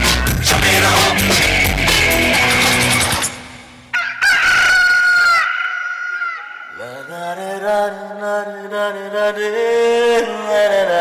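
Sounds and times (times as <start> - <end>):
loud rock music: 0.0 - 3.9
rooster crow sound effect: 3.9 - 7.0.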